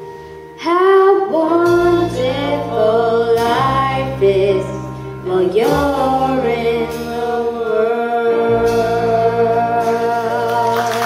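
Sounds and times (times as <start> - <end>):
live band and singer: 0.0 - 11.0
audience applause: 10.4 - 11.0.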